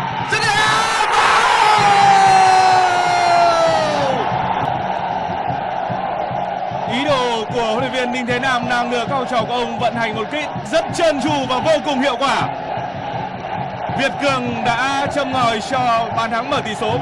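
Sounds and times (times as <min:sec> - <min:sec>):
stadium crowd cheering: 0:00.0 - 0:17.0
commentator shouting: 0:00.2 - 0:04.3, 0:06.9 - 0:12.5, 0:14.0 - 0:17.0.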